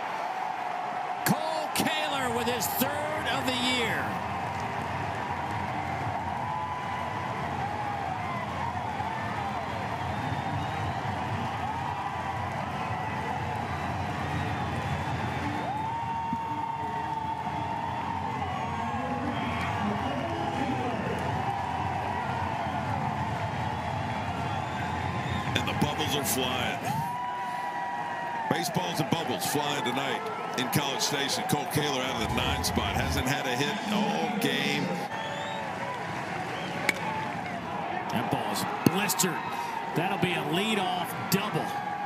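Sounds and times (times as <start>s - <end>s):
stadium crowd cheering: 0.0s - 42.0s
yells and whoops: 15.6s - 22.4s.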